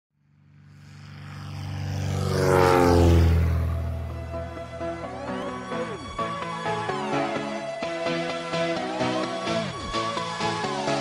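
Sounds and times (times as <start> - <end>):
propeller airplane flying past: 0.2 - 11.0.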